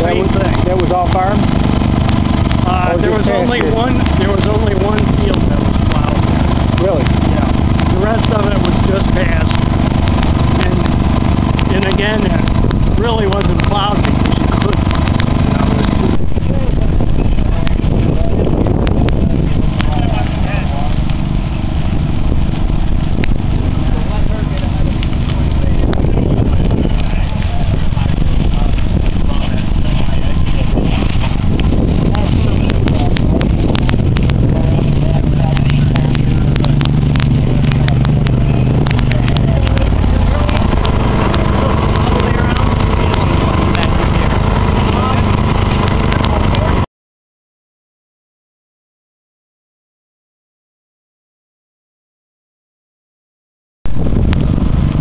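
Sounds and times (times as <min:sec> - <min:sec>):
grass fire crackling: 0:00.0 - 0:46.9, 0:53.9 - 0:55.0
steady low hum: 0:00.0 - 0:46.9
wind rumble on microphone: 0:00.0 - 0:46.9, 0:53.9 - 0:55.0.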